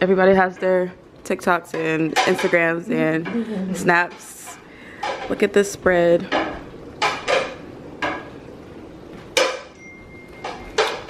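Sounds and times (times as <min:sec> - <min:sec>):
dishes and utensils clinking: 0:01.6 - 0:08.4, 0:09.2 - 0:11.0.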